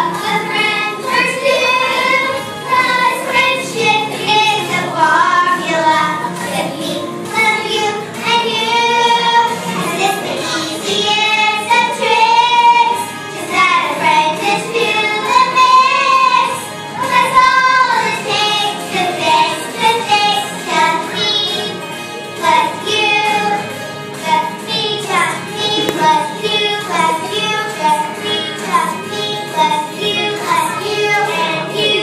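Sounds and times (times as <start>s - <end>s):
girls singing: 0.0s - 21.8s, 22.4s - 32.0s.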